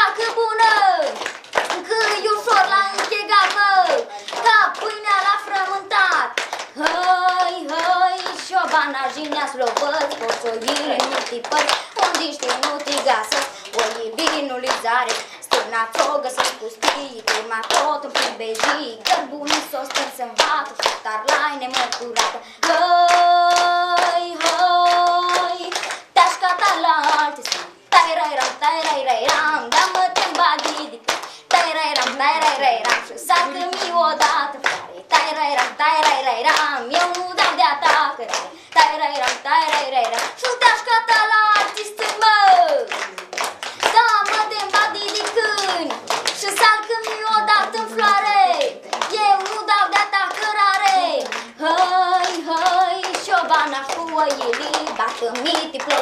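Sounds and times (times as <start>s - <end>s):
girl singing folk song: 0.0s - 43.0s, 43.6s - 56.0s
people clapping in time: 0.0s - 56.0s.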